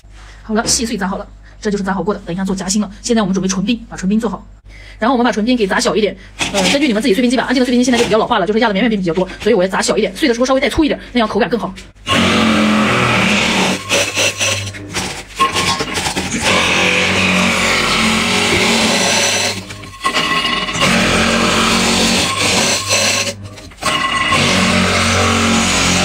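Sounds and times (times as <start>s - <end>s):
ice crusher grinding ice: 6.4s - 8.3s, 12.0s - 26.0s.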